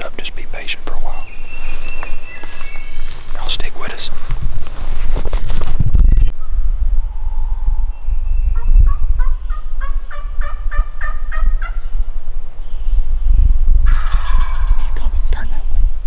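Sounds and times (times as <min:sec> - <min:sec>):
turkey calling: 0:08.5 - 0:12.0, 0:13.8 - 0:15.0
turkey gobbling loudly: 0:08.6 - 0:11.9, 0:13.8 - 0:14.9.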